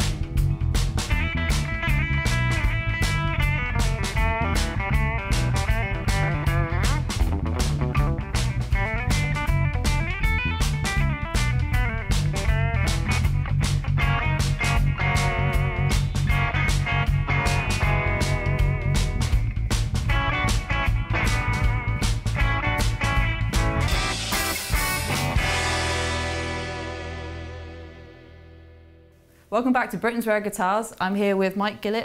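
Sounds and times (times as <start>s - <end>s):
steady drum beat: 0.0s - 27.9s
electric guitar lead lines: 0.0s - 29.1s
electric bass: 0.0s - 29.2s.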